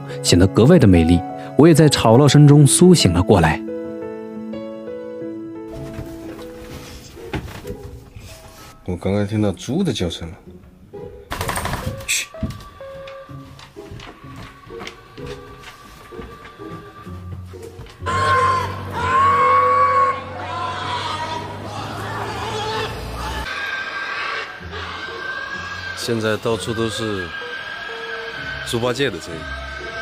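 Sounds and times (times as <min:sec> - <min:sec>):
background music: 0:00.0 - 0:30.0
pigs squealing: 0:18.0 - 0:30.0.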